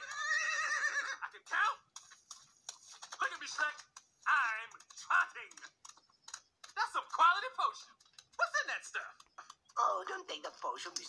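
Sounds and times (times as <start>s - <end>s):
horse whinny: 0.0s - 1.2s.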